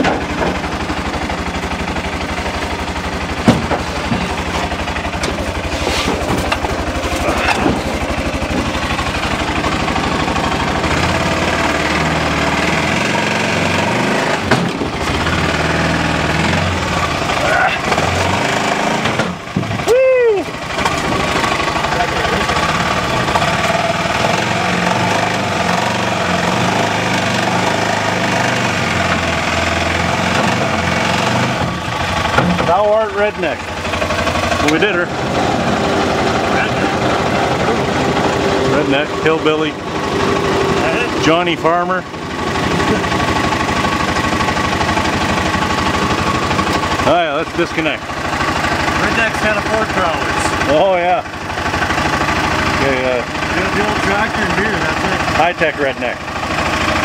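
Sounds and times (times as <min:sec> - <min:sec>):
engine idling: 0:00.0 - 0:57.0
sharp metal knocks: 0:03.4 - 0:05.4, 0:31.6 - 0:32.9.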